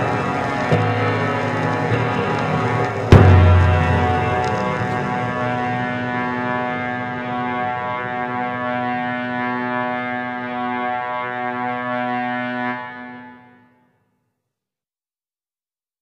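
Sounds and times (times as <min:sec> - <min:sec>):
sustained musical drone chord: 0:00.0 - 0:13.5.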